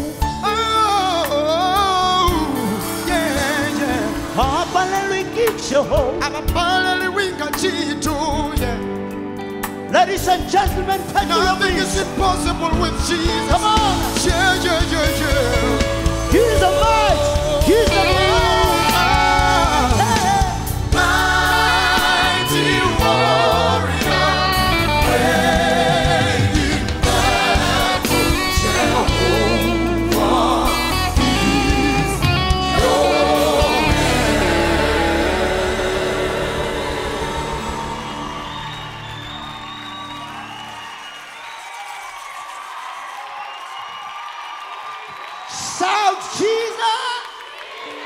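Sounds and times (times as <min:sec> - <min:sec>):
audience applauding and cheering: 0:00.0 - 0:07.6, 0:09.7 - 0:48.0
bass guitar: 0:00.0 - 0:40.6
group singing sustained harmonies: 0:15.1 - 0:39.4.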